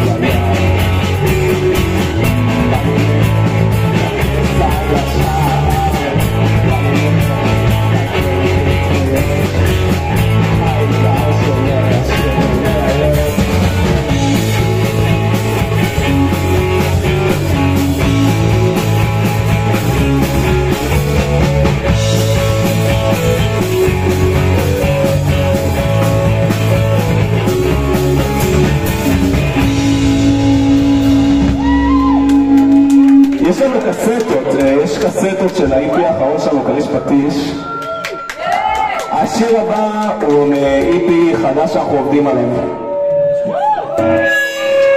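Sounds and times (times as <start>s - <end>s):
drum kit steady beat: 0.0s - 35.8s
keyboard: 0.0s - 38.4s
bass guitar: 0.0s - 44.9s
electric guitars: 0.0s - 44.9s.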